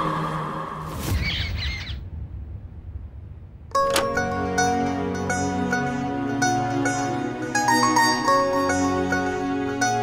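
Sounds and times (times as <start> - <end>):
low rumble: 0.2 - 4.4.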